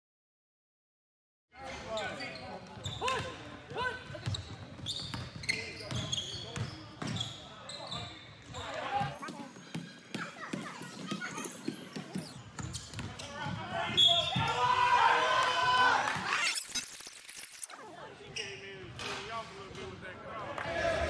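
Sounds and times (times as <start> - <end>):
sneaker squeaks: 1.9 - 14.6
ball bouncing on hardwood court: 9.0 - 13.6.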